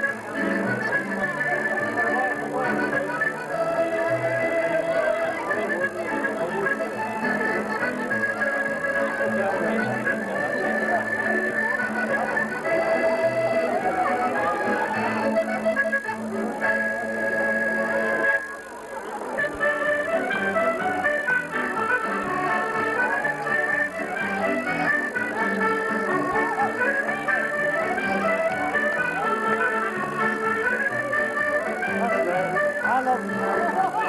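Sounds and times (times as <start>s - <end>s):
live band with accordion: 0.0s - 34.0s.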